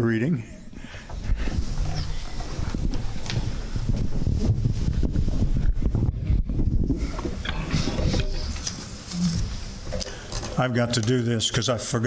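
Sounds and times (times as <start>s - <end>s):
microphone handling rumble: 0.7s - 10.6s.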